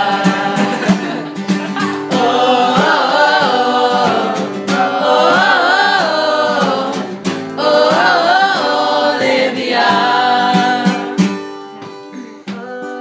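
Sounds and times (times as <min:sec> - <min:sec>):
group of people singing: 0:00.0 - 0:11.5, 0:12.5 - 0:13.0
strummed acoustic guitar: 0:00.0 - 0:13.0.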